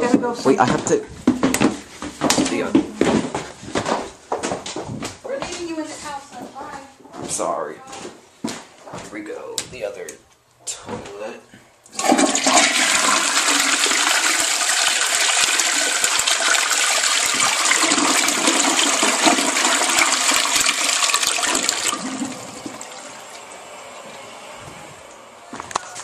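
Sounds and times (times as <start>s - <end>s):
toilet flushing: 11.9s - 25.4s.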